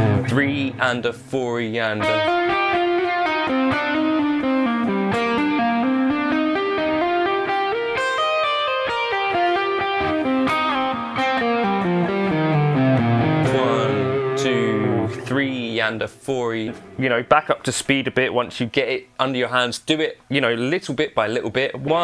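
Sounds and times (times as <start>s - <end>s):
electric guitar lick: 0.0s - 1.0s, 2.0s - 17.5s.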